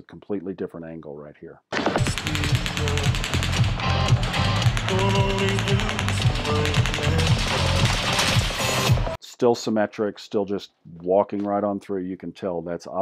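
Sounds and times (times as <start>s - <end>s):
automatic gunfire: 1.8s - 8.8s.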